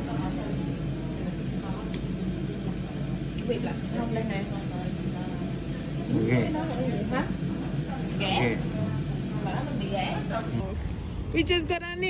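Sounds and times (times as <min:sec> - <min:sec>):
faint indistinct voices talking: 0:00.0 - 0:11.0
steady low hum: 0:00.0 - 0:12.0.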